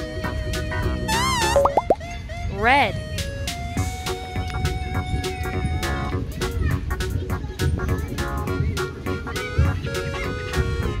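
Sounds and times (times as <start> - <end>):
children's background music: 0.0 - 2.4, 3.2 - 11.0
rising and falling voiced call: 1.1 - 1.7
quick rising plops: 1.1 - 2.0
wobbling tone: 1.1 - 2.0.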